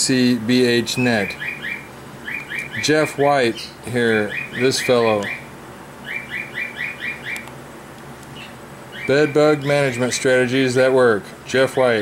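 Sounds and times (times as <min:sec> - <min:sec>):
pet bird chirping: 0:00.9 - 0:07.5, 0:08.2 - 0:10.2.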